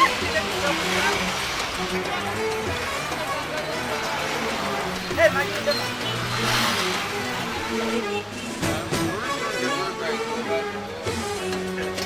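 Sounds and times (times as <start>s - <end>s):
road vehicle passing: 0.0s - 10.8s
background music with held notes: 0.0s - 12.0s.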